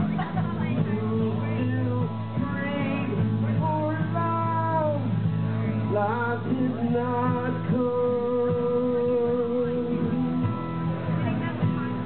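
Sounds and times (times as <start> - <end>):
acoustic guitars: 0.0 - 12.0
electric bass line: 0.0 - 12.0.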